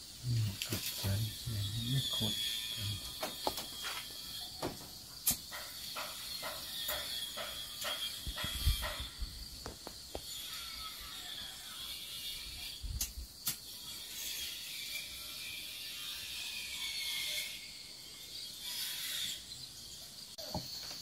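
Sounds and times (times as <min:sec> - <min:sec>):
crickets droning: 0:00.0 - 0:21.0
short scraping strokes: 0:18.5 - 0:19.6.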